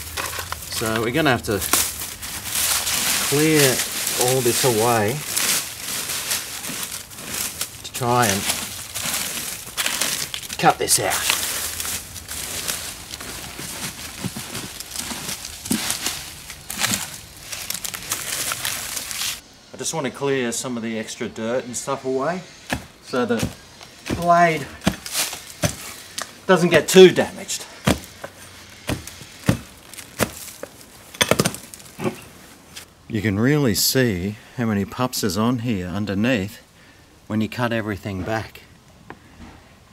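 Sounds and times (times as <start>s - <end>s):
dry leaves rustling and crunching: 0.0s - 19.4s, 22.4s - 32.9s
digging tool chopping into soil: 22.7s - 26.2s, 27.8s - 28.2s, 28.8s - 30.5s.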